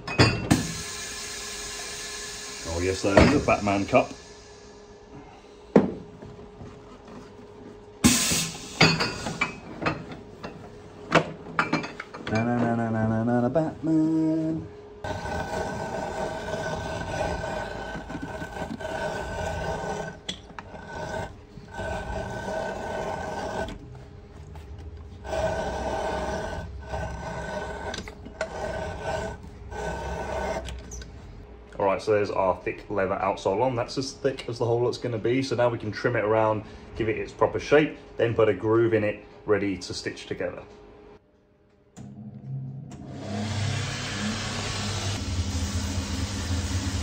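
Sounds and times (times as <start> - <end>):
workshop machine whining and grinding: 0.0 - 32.2, 42.0 - 47.0.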